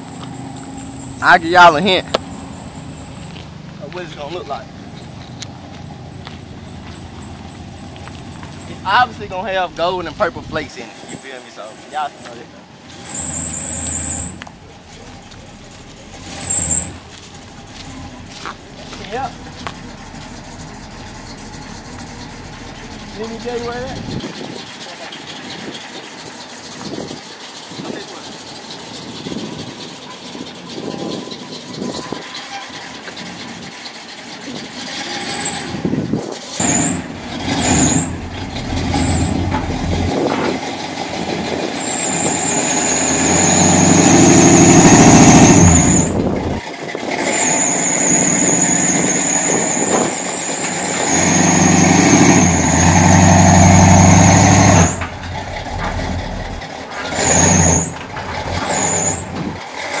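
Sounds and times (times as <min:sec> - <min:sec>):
high wavering squeal: 0:00.0 - 0:03.4, 0:10.7 - 0:26.7, 0:36.6 - 0:40.3, 0:41.5 - 0:46.6, 0:47.3 - 0:59.4
car engine revving: 0:12.0 - 0:25.8, 0:36.6 - 1:00.0.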